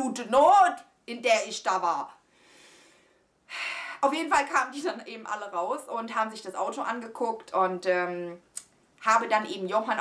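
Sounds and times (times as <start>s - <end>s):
woman breathing: 2.2s - 4.0s.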